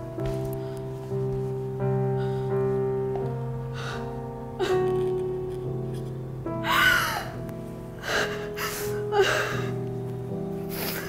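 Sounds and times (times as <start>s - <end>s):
soft background music: 0.0s - 11.0s
woman sobbing: 6.6s - 7.4s, 8.0s - 9.8s, 10.7s - 11.0s.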